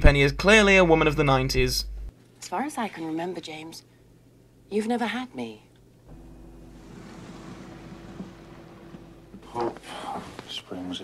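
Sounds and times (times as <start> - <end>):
faint held hum: 0.0 - 11.0
even hiss: 6.1 - 11.0.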